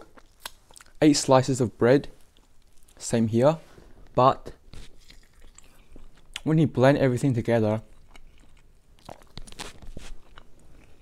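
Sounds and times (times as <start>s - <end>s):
person chewing with mouth clicks: 0.0s - 1.0s, 4.8s - 6.5s, 7.8s - 11.0s.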